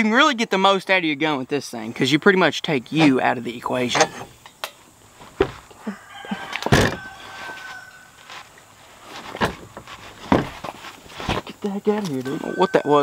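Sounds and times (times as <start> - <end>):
faint thin squeak-like tone: 12.2 - 13.0.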